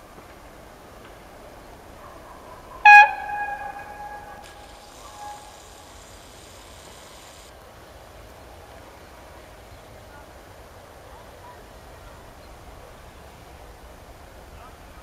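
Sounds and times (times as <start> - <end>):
train horn blast: 2.8 - 5.6.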